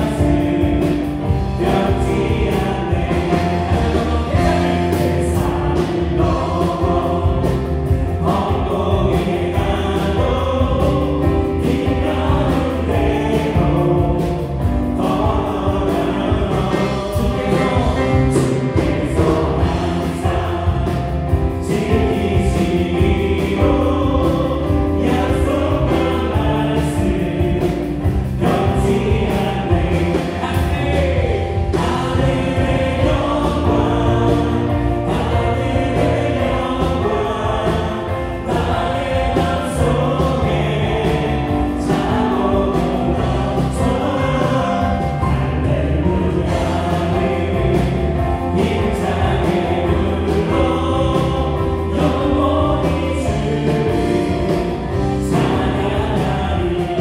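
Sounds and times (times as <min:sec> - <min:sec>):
bass guitar: 0:00.0 - 0:57.0
drums: 0:00.0 - 0:57.0
keyboards: 0:00.0 - 0:57.0
voices singing: 0:00.0 - 0:57.0.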